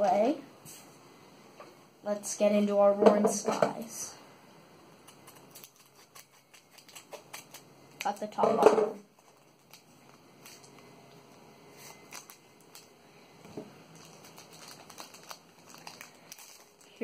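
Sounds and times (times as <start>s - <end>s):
foil wrapper crinkling: 5.0s - 8.4s, 9.0s - 10.9s, 11.7s - 13.0s, 13.9s - 17.0s.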